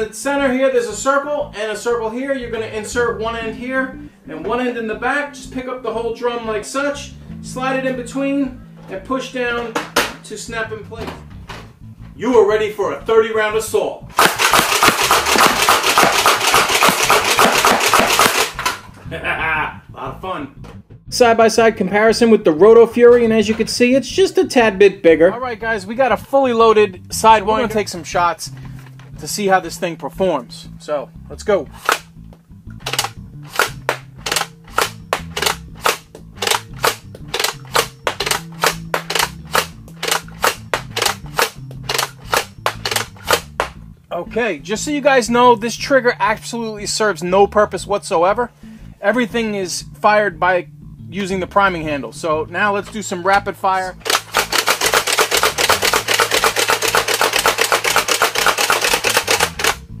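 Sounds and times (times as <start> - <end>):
foam dart blaster shots: 14.2 - 18.8.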